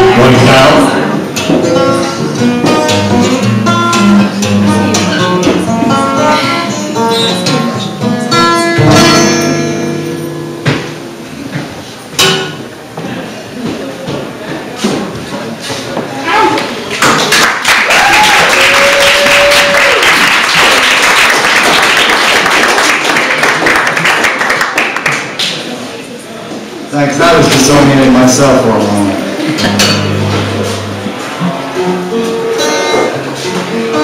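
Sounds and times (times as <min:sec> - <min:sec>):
audience applause: 0:16.9 - 0:25.8
person whooping: 0:17.9 - 0:20.1.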